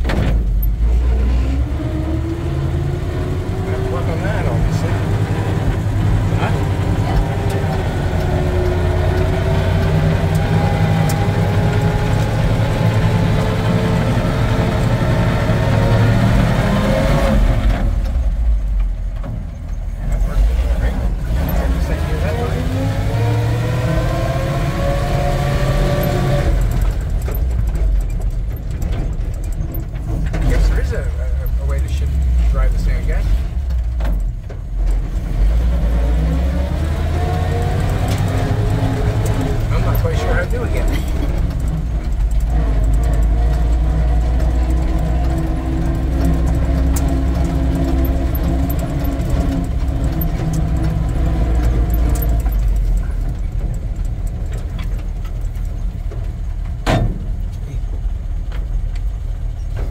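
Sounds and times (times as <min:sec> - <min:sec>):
truck engine revving: 0:00.0 - 0:59.9.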